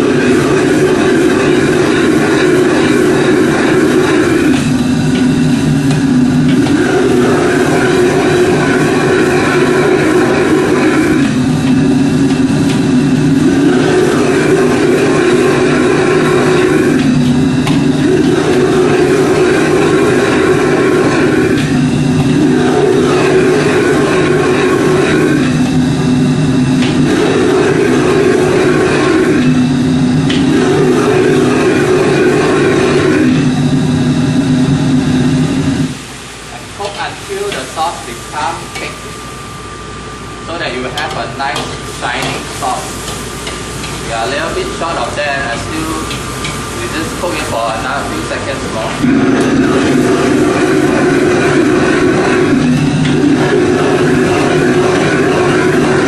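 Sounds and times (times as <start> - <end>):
gas wok burner roaring: 0.0 - 56.0.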